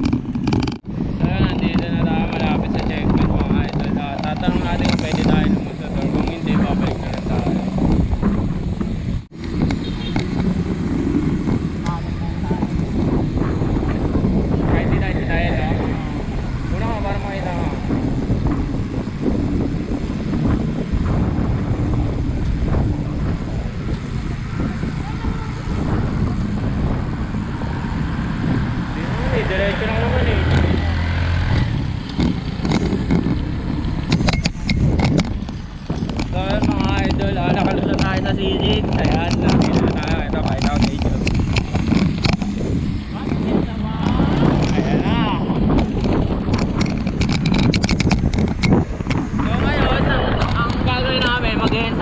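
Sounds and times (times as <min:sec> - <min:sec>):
motor traffic passing: 0:00.0 - 0:52.0
wind rushing over microphone: 0:00.0 - 0:52.0
indistinct voices: 0:21.1 - 0:47.7, 0:49.2 - 0:52.0.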